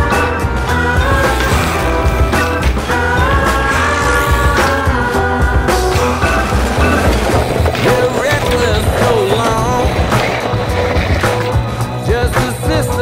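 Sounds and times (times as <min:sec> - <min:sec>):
funk-rock song: 0:00.0 - 0:13.0
tyres rolling on concrete: 0:00.0 - 0:13.0.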